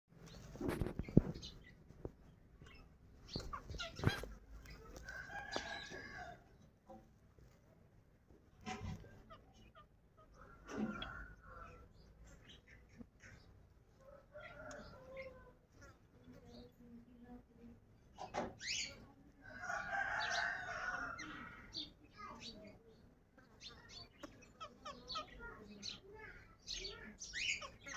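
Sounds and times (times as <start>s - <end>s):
bird chirps and calls: 0.2s - 6.7s, 8.6s - 13.7s, 14.3s - 17.0s, 17.9s - 27.9s
parakeets squawking: 3.3s - 4.9s, 23.7s - 27.9s.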